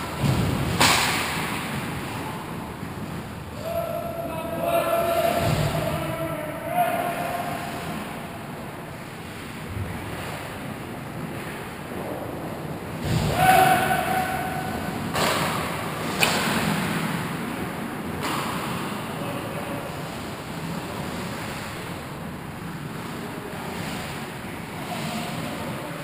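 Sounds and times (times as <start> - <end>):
sharp crack: 0.2 - 1.9
players calling out: 3.5 - 9.0, 13.1 - 15.2.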